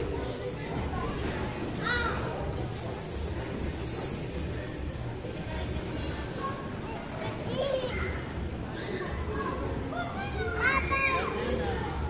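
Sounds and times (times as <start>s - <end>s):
children playing and calling out: 0.0s - 2.8s, 5.5s - 12.0s.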